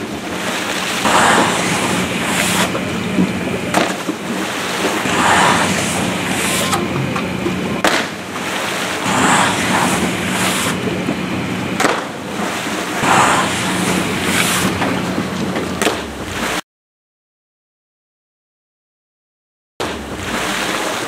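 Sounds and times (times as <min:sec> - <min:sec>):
steady low hum: 0:00.0 - 0:16.6
water splashing: 0:00.0 - 0:16.6, 0:19.8 - 0:21.0.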